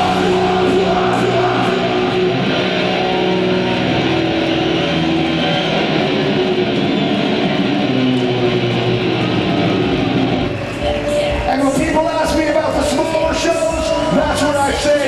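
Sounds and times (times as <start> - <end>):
live metal band playing: 0.0 - 15.0.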